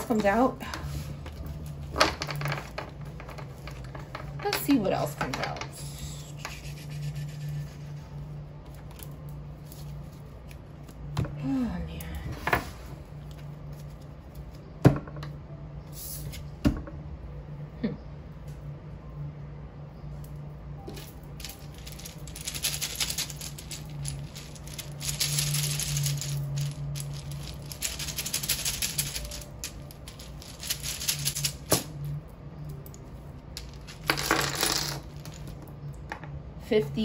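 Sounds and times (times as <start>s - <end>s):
wooden tiles clattering: 1.4s - 5.8s, 21.0s - 31.6s.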